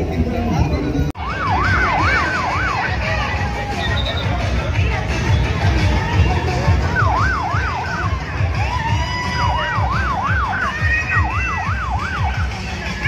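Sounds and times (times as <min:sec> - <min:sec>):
bass-heavy pulsing background: 0:00.0 - 0:13.0
warbling siren tone: 0:01.2 - 0:03.0, 0:06.8 - 0:12.5.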